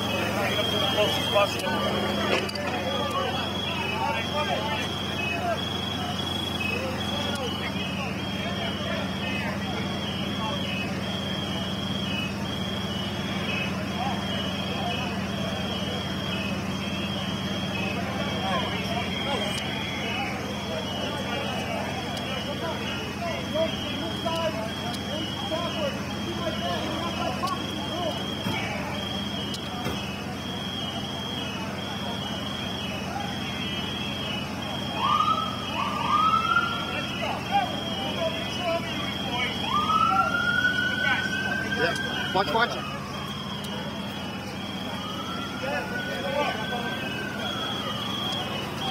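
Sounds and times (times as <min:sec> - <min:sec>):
high electronic beeping: 0:00.0 - 0:48.9
indistinct voices: 0:00.0 - 0:48.9
vehicle engines idling: 0:00.0 - 0:48.9.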